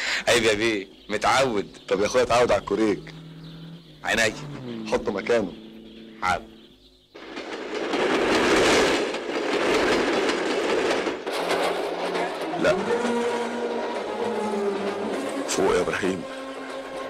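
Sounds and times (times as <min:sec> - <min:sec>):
fast train passing: 0:00.6 - 0:17.0.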